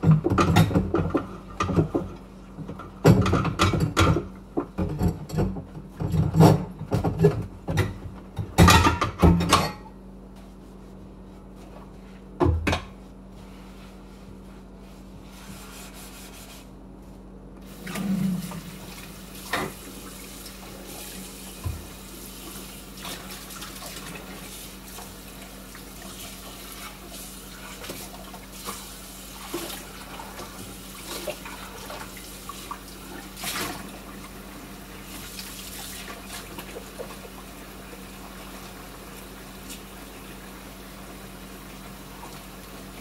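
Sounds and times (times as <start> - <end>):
dishware clinking against sink: 4.8 - 9.9
faucet running: 17.7 - 30.0.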